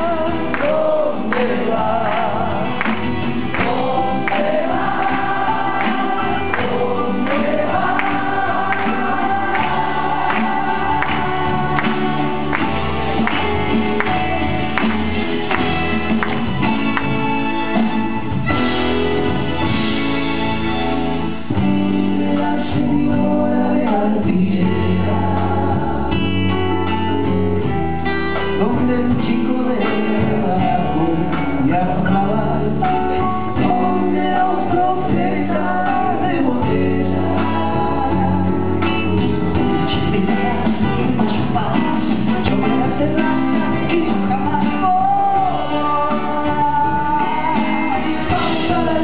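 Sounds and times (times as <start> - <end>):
voices singing together: 0.0 - 13.4
drums: 0.0 - 49.0
live rock band playing: 0.0 - 49.0
strummed acoustic guitars: 0.0 - 49.0.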